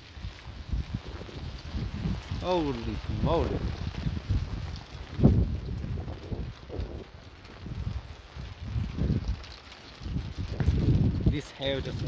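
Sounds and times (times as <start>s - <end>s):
hail pattering: 0.0s - 12.0s
wind buffeting microphone: 0.0s - 12.0s.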